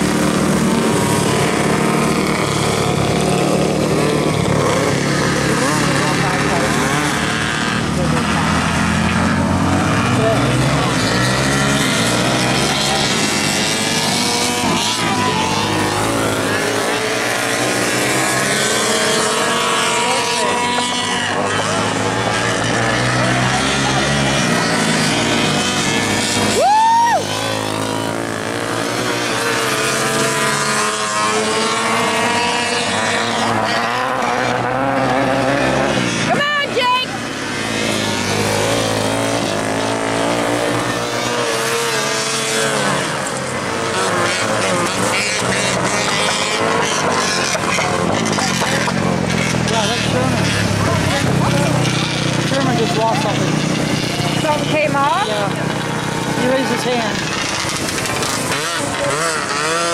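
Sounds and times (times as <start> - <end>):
kart engines racing: 0.0 - 59.9.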